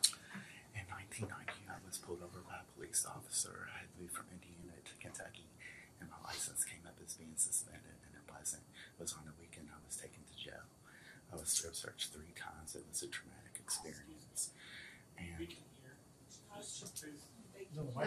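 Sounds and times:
people whispering: 0:00.0 - 0:18.0.

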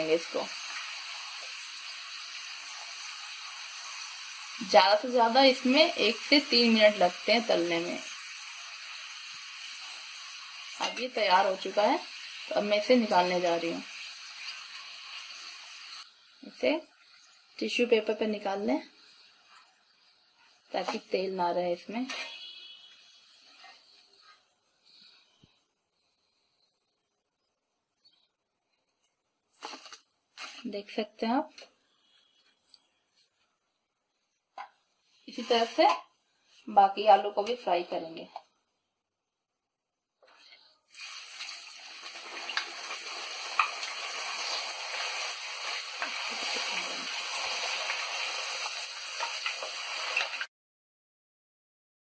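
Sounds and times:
potato slices sizzling in hot oil: 0:00.0 - 0:25.3, 0:29.6 - 0:32.8, 0:34.6 - 0:38.2, 0:40.3 - 0:50.5.

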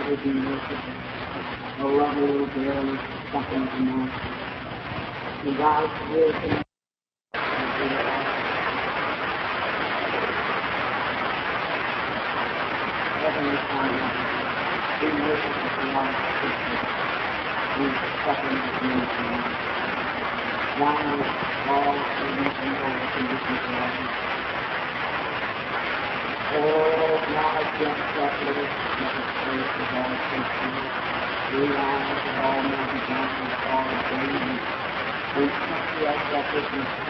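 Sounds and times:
steady recording hiss: 0:00.0 - 0:06.7, 0:07.4 - 0:37.0.

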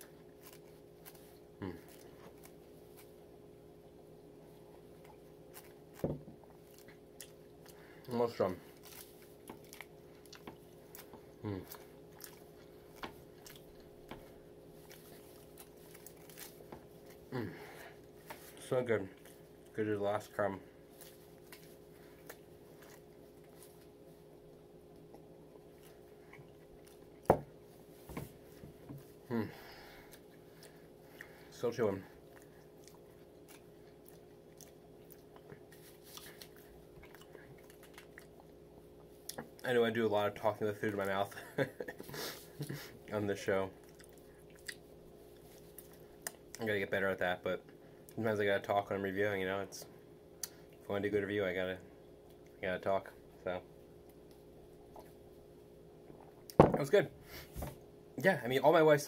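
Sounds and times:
person chewing: 0:00.0 - 0:03.4, 0:04.4 - 0:19.7, 0:20.8 - 0:31.5, 0:32.2 - 0:39.6, 0:43.8 - 0:46.6
faint room hum: 0:00.0 - 0:59.0.

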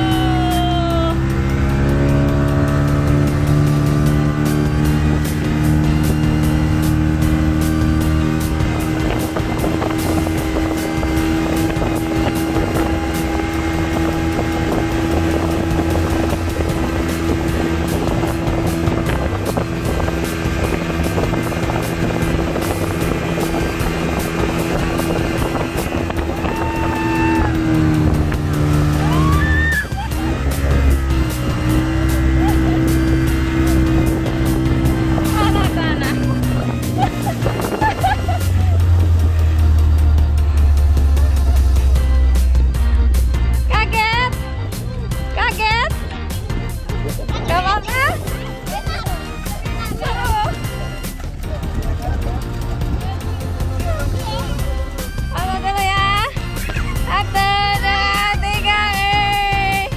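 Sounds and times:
boat wake rushing: 0:00.0 - 0:59.9
motorboat engine running: 0:00.0 - 0:59.9.

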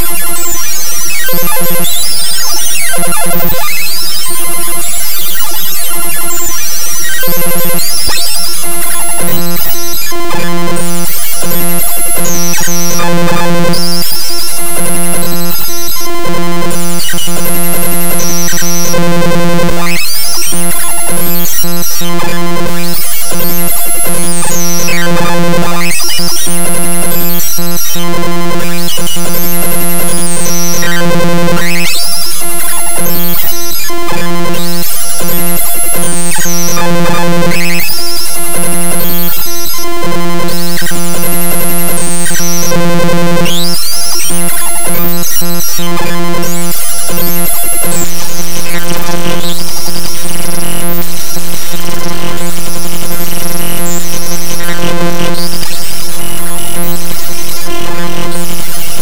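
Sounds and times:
dense digital tones: 0:00.0 - 0:59.0.

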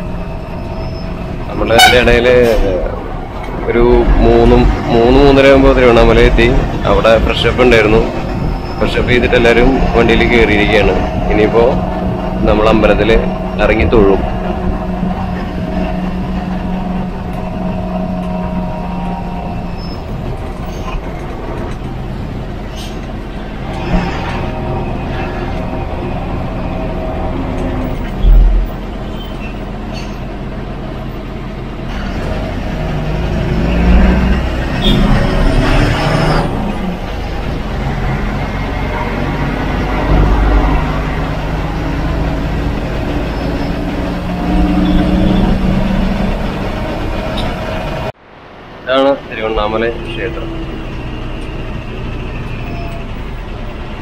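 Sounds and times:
bus diesel engine running: 0:00.0 - 0:54.0
road noise: 0:00.0 - 0:54.0.

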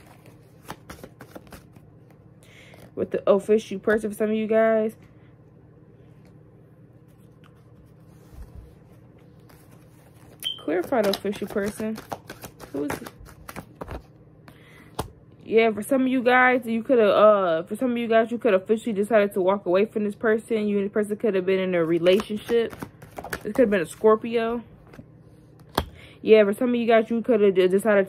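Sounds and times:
cards being shuffled: 0:00.0 - 0:03.0, 0:07.0 - 0:14.2, 0:21.8 - 0:24.1.

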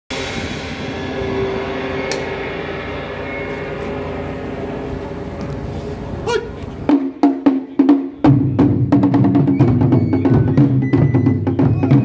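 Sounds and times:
steady outdoor hum: 0:00.1 - 0:09.3.

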